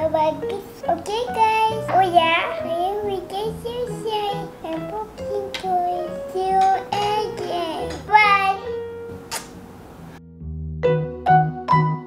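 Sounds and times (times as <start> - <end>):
steady low notes: 0.8 - 11.2.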